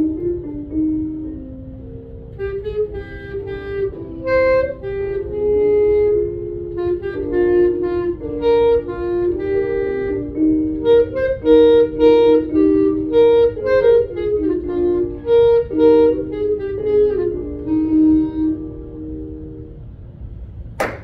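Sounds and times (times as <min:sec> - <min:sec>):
clarinet solo melody: 0:00.0 - 0:20.2.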